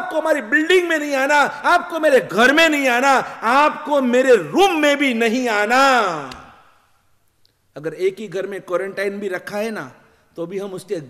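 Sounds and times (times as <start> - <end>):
man speaking: 0.0 - 6.4, 7.8 - 11.0.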